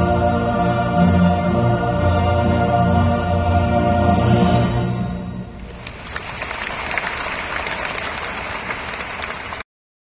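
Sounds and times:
choir and orchestra chord: 0.0s - 5.2s
audience applauding: 5.6s - 9.7s.

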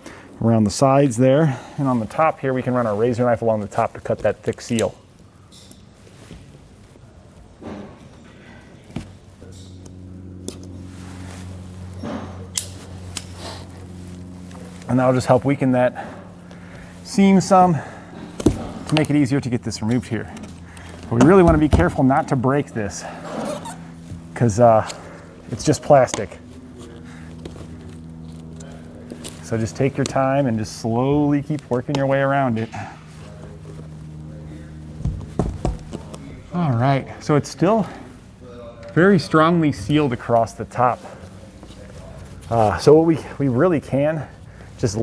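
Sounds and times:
steady low hum: 0.0s - 45.0s
faint handling sounds: 1.8s - 45.0s.

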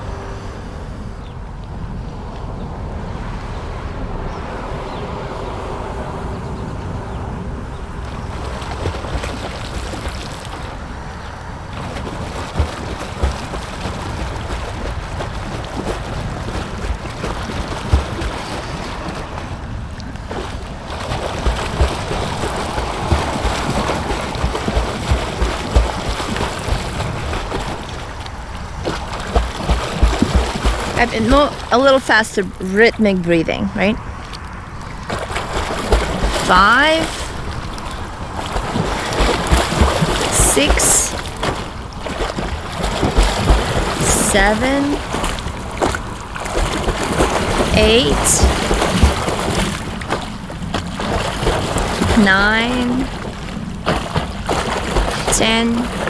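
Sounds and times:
water sloshing and lapping: 0.0s - 56.0s
wind on microphone: 0.0s - 56.0s.

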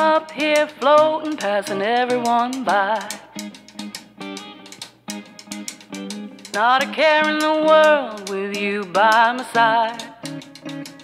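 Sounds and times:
guitar: 0.0s - 11.0s.

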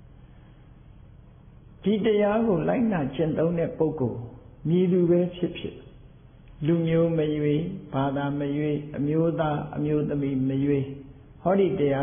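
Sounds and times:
monk chanting: 1.8s - 5.9s, 6.6s - 12.0s.

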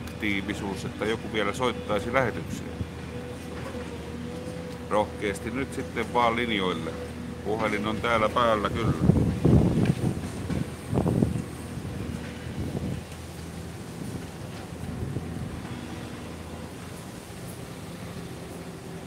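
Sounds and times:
street traffic: 0.0s - 19.0s
vehicle engine humming: 0.0s - 19.0s
wind hitting microphone: 8.0s - 16.3s.

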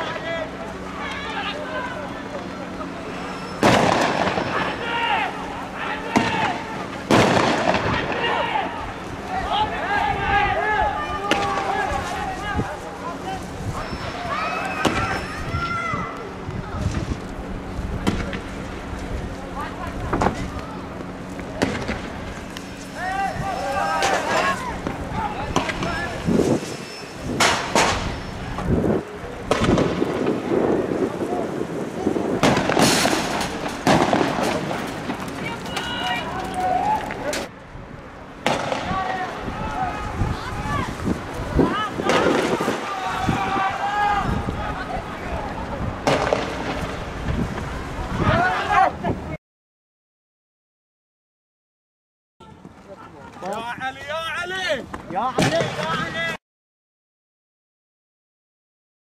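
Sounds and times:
voices shouting: 0.0s - 16.8s, 19.5s - 37.5s, 38.4s - 46.6s, 47.7s - 49.2s
gunfire bangs: 3.6s - 4.7s, 6.1s - 8.3s, 29.5s - 30.3s, 32.4s - 35.2s, 38.4s - 39.0s, 46.0s - 46.8s
loud gunshot with echo: 3.6s - 4.7s, 7.1s - 8.2s.

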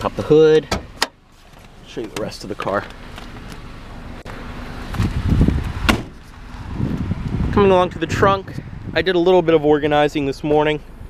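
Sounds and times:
car door shutting: 4.3s - 7.0s
wind buffeting microphone: 4.9s - 10.0s.

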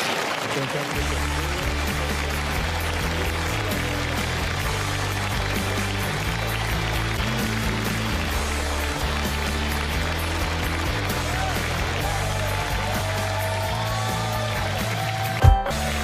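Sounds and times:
theme music with steady bass line: 1.0s - 16.0s.

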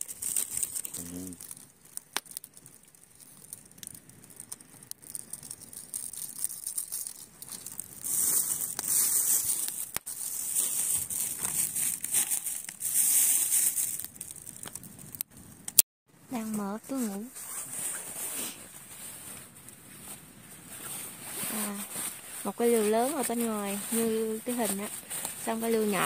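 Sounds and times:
plastic bag crinkling: 0.0s - 15.2s, 17.2s - 26.0s.

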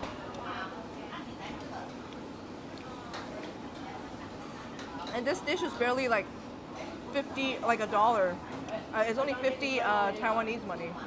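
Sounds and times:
food stall hubbub: 0.0s - 11.0s.

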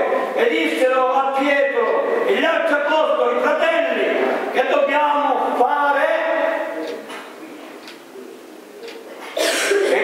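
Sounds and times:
person coughing: 9.2s - 10.0s.

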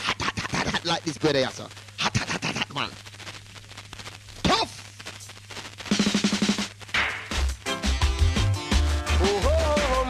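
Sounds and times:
fast drum roll: 5.9s - 10.0s.

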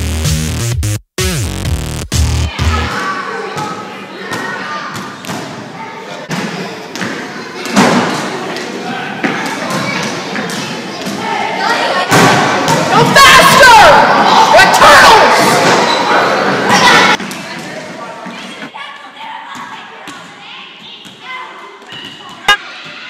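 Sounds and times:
children's voices: 2.5s - 23.0s.

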